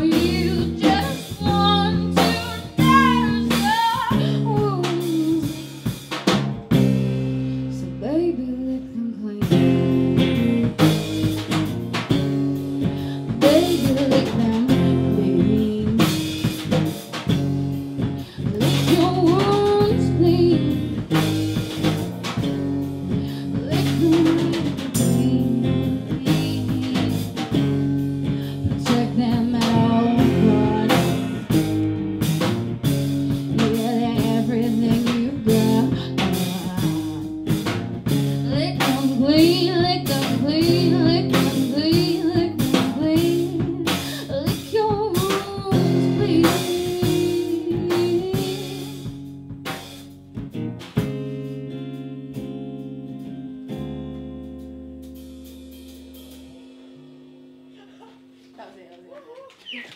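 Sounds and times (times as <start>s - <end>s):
woman singing: 0.0s - 5.8s, 7.7s - 10.4s, 12.6s - 16.8s, 18.2s - 21.4s, 23.2s - 31.6s, 33.4s - 49.2s
live band playing: 0.0s - 8.4s, 9.2s - 59.0s.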